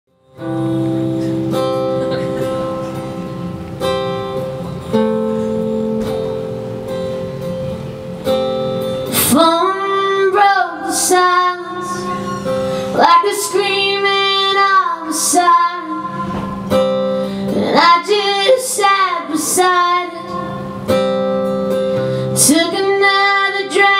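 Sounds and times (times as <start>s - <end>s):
acoustic guitar strumming: 0.1s - 23.9s
woman singing: 9.1s - 16.9s, 17.5s - 21.1s, 22.2s - 23.9s.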